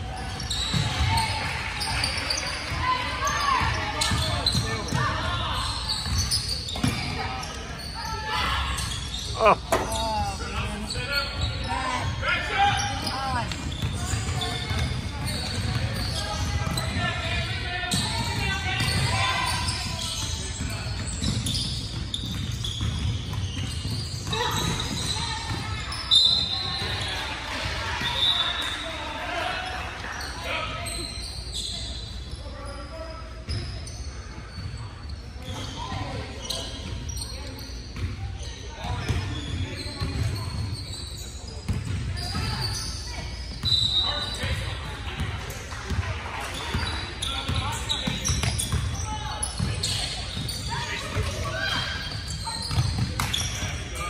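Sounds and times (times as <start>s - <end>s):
basketballs bouncing on hardwood: 21.0s - 25.7s.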